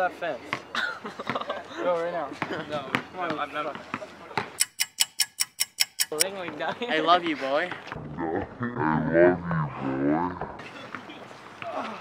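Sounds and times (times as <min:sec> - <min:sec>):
fast clock ticking: 0:04.6 - 0:06.2.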